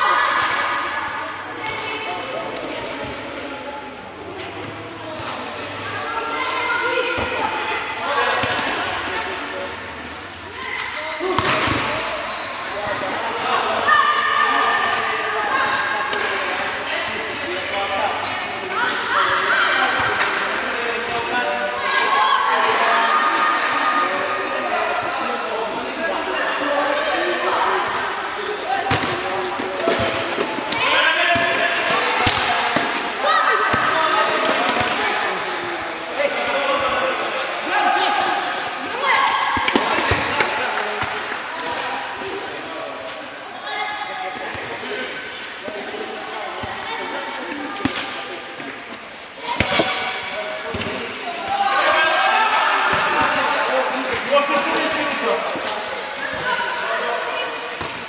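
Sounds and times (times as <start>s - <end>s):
children shouting: 0.0s - 2.0s, 13.5s - 16.0s, 21.8s - 24.1s, 37.7s - 40.2s.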